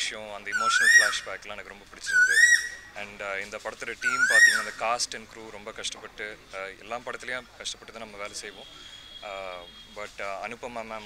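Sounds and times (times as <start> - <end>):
high whistling call: 0.5 - 1.3, 2.0 - 2.9, 4.0 - 4.8, 8.5 - 10.0.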